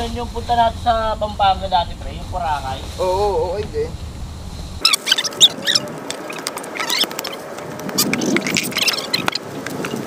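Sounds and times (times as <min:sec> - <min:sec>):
small birds chirping: 0:04.0 - 0:10.0.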